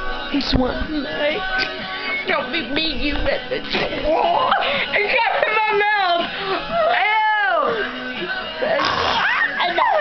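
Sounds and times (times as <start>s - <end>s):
girl squealing: 9.0s - 10.0s.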